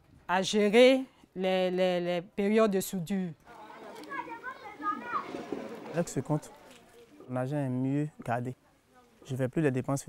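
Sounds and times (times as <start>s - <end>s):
children chattering and calling: 3.4s - 7.3s.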